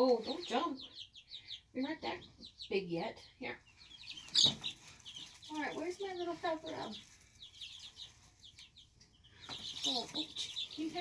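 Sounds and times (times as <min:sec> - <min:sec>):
baby chicks peeping: 0:00.0 - 0:11.0.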